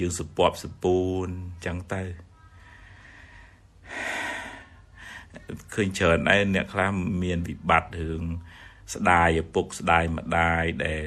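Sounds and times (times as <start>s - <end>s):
man talking: 0.0s - 2.2s, 5.3s - 11.0s
faint low hum: 0.0s - 11.0s
man breathing in: 2.6s - 5.4s, 8.4s - 8.9s.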